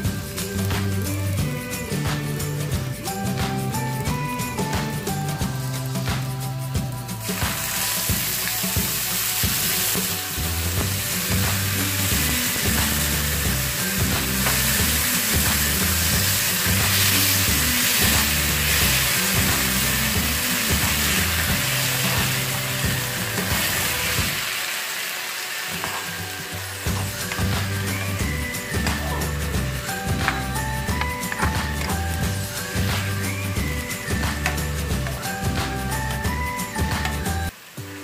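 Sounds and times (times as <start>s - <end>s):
background music: 0.0s - 38.0s
tomatoes sizzling in frying pan: 0.0s - 38.0s.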